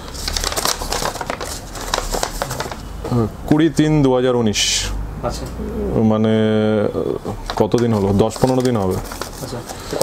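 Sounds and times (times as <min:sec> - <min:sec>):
paper rustling and crackling: 0:00.0 - 0:02.9, 0:07.5 - 0:10.0.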